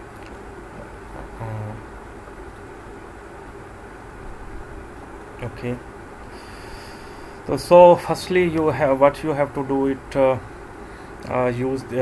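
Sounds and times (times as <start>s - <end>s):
low background hum and hiss: 0.0s - 12.0s.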